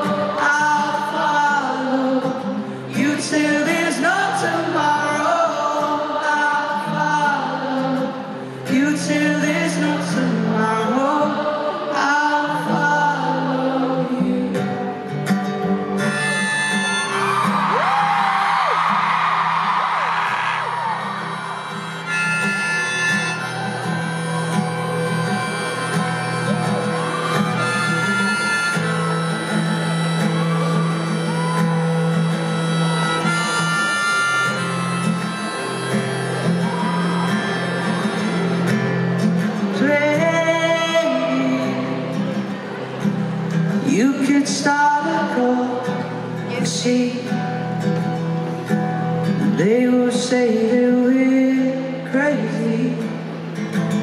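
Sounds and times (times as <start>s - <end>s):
person singing: 0.0s - 15.2s, 20.2s - 43.0s, 43.8s - 48.1s, 49.4s - 53.2s
acoustic guitar: 0.0s - 54.0s
crowd cheering: 17.0s - 40.0s.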